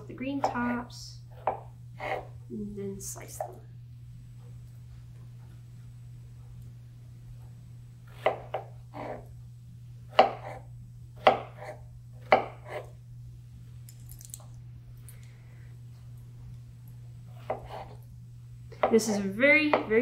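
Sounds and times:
knife chopping on wooden board: 0:01.3 - 0:02.3, 0:08.1 - 0:09.2, 0:10.1 - 0:10.6, 0:11.2 - 0:12.9, 0:17.4 - 0:18.0, 0:18.8 - 0:19.0, 0:19.7 - 0:20.0.

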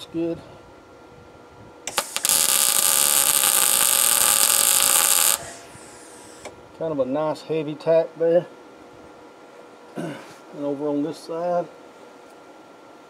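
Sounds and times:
welding arc sizzle: 0:01.8 - 0:06.5
welding arc pops: 0:01.8 - 0:06.6.

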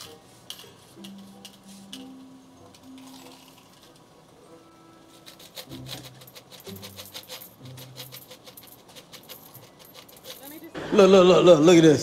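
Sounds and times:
coins clinking: 0:00.0 - 0:04.2, 0:05.0 - 0:10.8
faint background music: 0:00.0 - 0:12.0.

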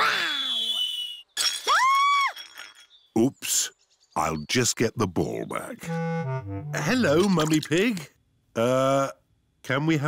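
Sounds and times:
falling whistle: 0:00.0 - 0:01.3
glass breaking: 0:01.4 - 0:03.1
tone rising and falling: 0:05.9 - 0:07.2.

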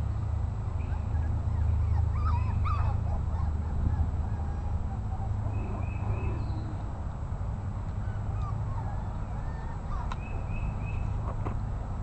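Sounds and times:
puppies whimpering: 0:00.8 - 0:06.8, 0:08.0 - 0:10.7.

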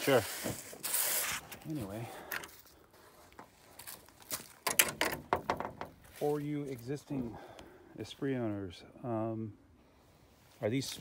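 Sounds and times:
hard objects clicking and knocking: 0:04.6 - 0:06.0.

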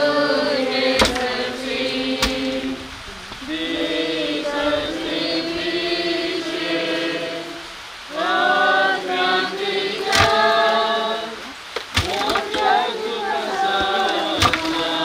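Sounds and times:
group singing a hymn: 0:00.0 - 0:15.0
sharp thump: 0:01.0 - 0:01.3, 0:02.2 - 0:02.6, 0:10.1 - 0:10.4.

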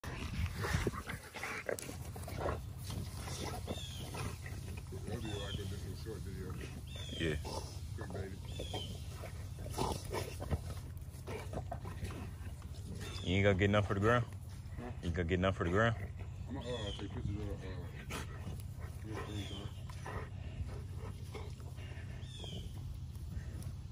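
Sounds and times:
dogs growling and snarling: 0:00.0 - 0:23.9.

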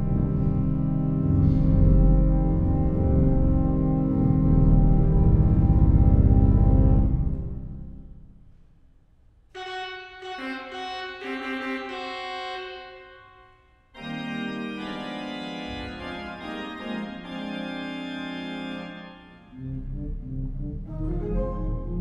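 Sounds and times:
pipe organ chords: 0:00.0 - 0:08.3, 0:09.6 - 0:22.0.

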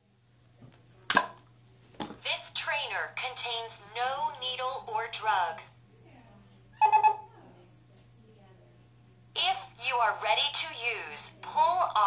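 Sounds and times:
short electronic beep: 0:06.8 - 0:07.2.

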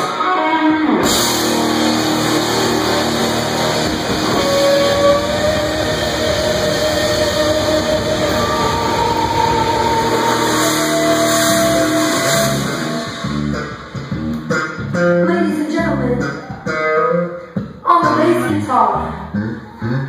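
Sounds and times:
rock band playing loudly: 0:00.0 - 0:17.8
lead guitar sustained notes: 0:00.0 - 0:18.7.

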